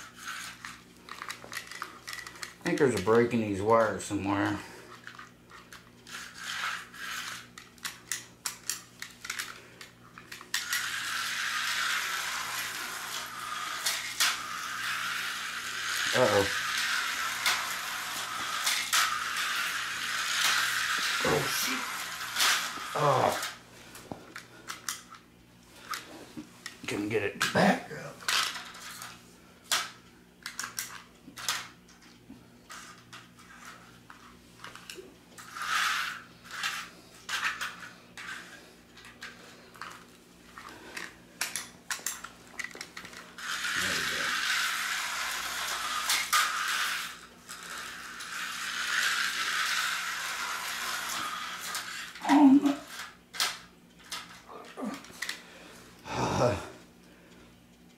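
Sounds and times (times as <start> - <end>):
clicks and rattles of handled toys: 0.1 - 25.2, 28.2 - 55.4
slot car motor buzzing: 10.6 - 23.6, 43.4 - 53.2.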